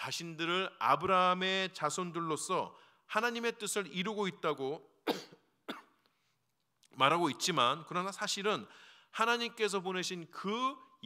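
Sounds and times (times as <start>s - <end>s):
man coughing: 5.0s - 6.0s.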